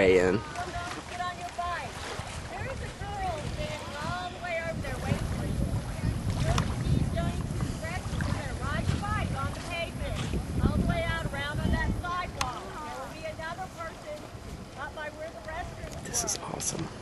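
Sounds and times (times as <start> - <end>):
wind rumble on microphone: 0.0 - 17.0.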